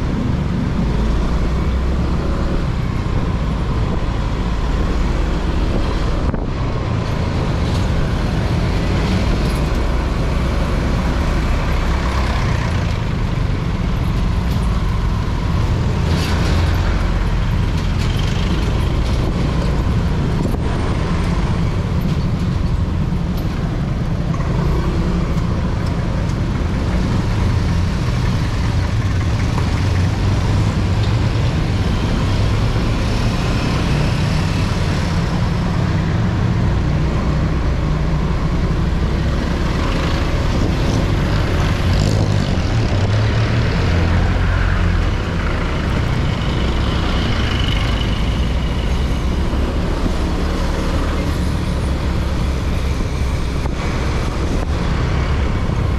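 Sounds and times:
other vehicle engines: 0.0 - 55.9
scooter engine and road noise: 0.0 - 55.9.

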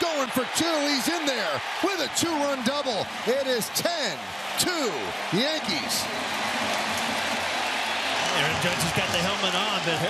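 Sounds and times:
crowd cheering and applauding: 0.0 - 10.0.

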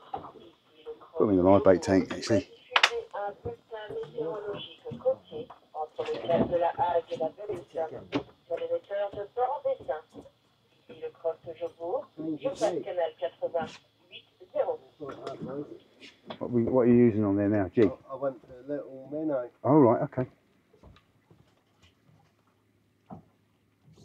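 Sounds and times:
men talking: 1.2 - 2.5, 15.1 - 20.3.

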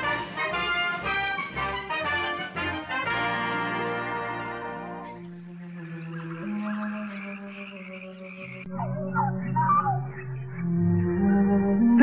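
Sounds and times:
warbling gliding calls: 5.2 - 12.0
orchestral music soft chords: 8.6 - 12.0.

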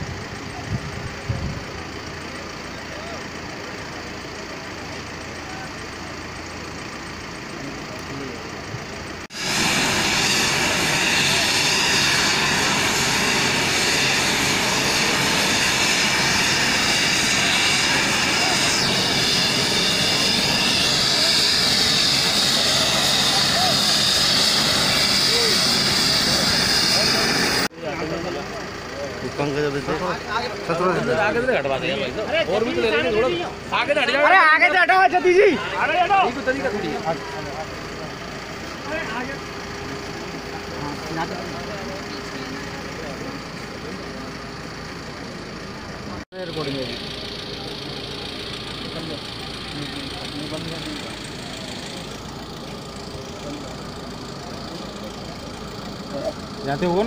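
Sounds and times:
helicopter engine and rotor: 0.0 - 57.0
murmur of voices: 16.9 - 57.0.

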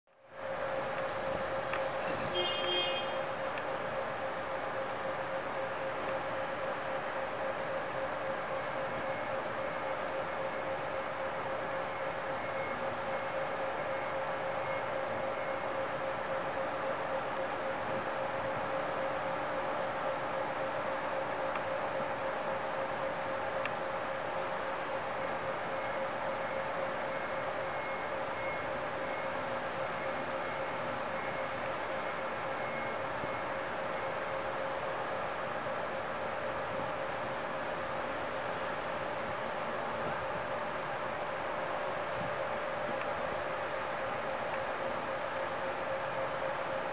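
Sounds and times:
steady mechanical hum: 0.1 - 46.9.

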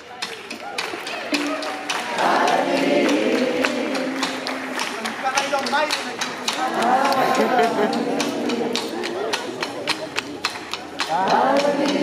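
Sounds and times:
live band playing: 0.0 - 11.6
sharp percussive hits: 0.0 - 12.0
voices singing together: 1.3 - 5.2, 6.3 - 10.2, 10.8 - 12.0.

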